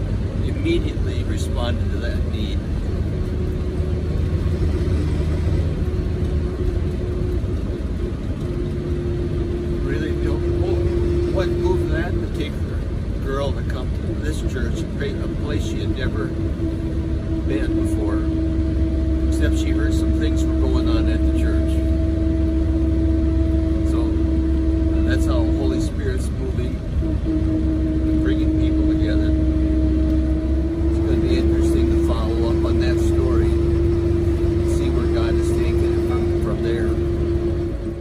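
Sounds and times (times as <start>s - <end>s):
droning whine: 0.0s - 38.0s
minibus engine rumble: 0.0s - 38.0s.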